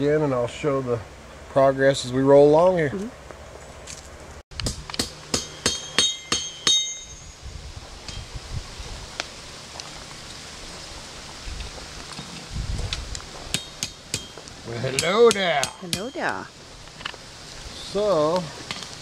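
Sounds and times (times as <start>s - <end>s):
ringing metallic strikes: 5.0s - 7.4s
metal tools clinking: 5.4s - 7.4s.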